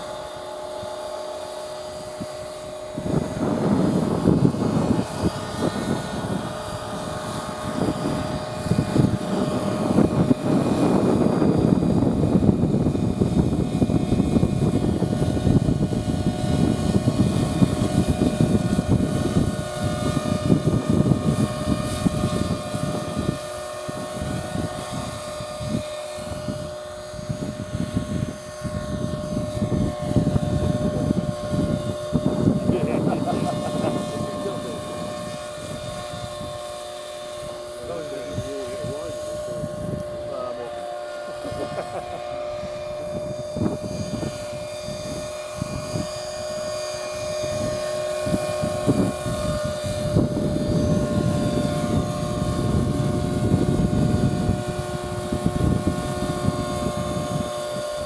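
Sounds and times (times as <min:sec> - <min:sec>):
model helicopter rotor whine: 0:00.0 - 0:58.0
wind rumble on microphone: 0:00.0 - 0:58.0.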